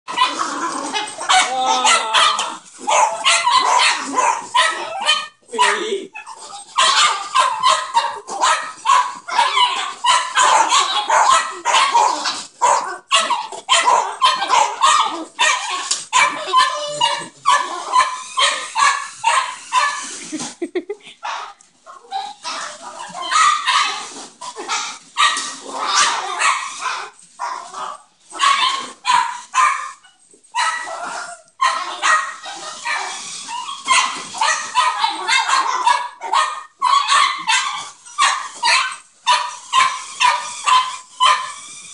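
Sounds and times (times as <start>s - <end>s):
small dogs barking and yapping: 0.1s - 41.9s.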